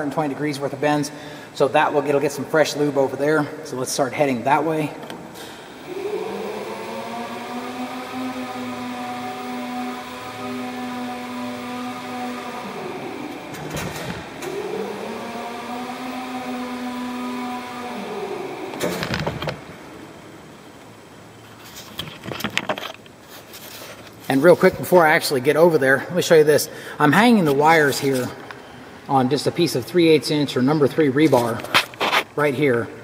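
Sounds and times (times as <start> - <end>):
electric motor whine: 5.8 - 20.1.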